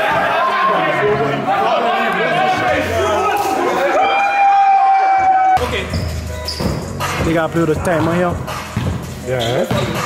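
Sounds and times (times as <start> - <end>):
basketball bouncing on gym floor: 7.8 - 9.0, 9.7 - 10.0.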